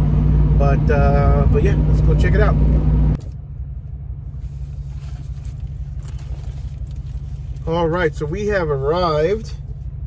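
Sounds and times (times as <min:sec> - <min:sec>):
truck engine rumbling: 0:00.0 - 0:10.0.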